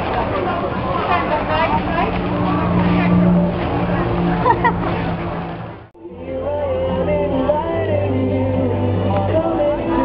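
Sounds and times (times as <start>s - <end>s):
many voices chattering: 0.0s - 5.9s
vehicle engine humming: 0.0s - 6.0s.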